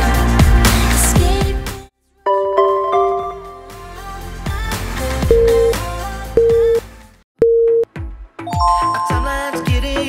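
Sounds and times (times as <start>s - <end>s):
upbeat background music: 0.0s - 10.0s
electronic countdown beeps: 5.3s - 5.8s, 6.4s - 6.8s, 8.5s - 9.4s.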